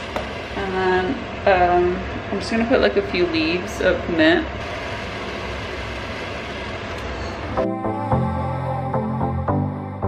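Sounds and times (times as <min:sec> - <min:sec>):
stove rushing noise: 0:00.0 - 0:07.7
low hum: 0:04.6 - 0:10.0.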